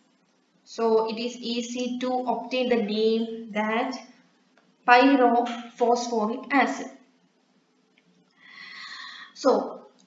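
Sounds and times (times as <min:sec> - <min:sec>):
woman speaking: 0:00.7 - 0:04.1, 0:04.9 - 0:07.0, 0:08.9 - 0:09.8
woman's soft in-breath: 0:08.4 - 0:09.4.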